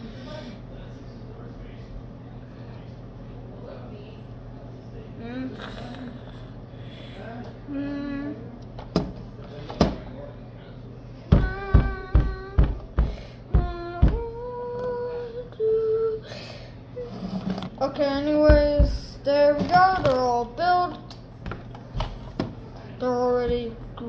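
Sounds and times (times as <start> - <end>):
child humming wordlessly: 11.3 - 12.9, 13.5 - 16.2.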